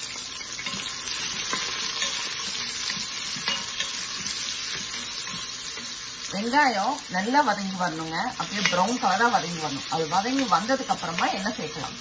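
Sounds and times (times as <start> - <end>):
onions sizzling in hot oil: 0.0 - 12.0
wooden spoon stirring: 0.4 - 6.1.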